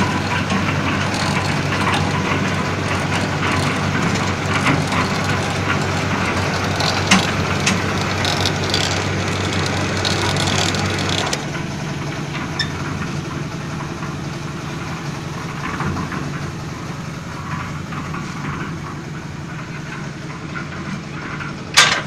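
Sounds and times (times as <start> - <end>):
winch motor humming: 0.0 - 22.0.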